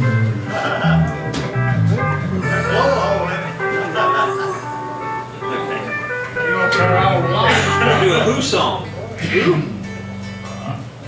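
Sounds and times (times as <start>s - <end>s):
country band guitars and pedal steel: 0.0s - 10.9s
people talking: 0.5s - 10.9s.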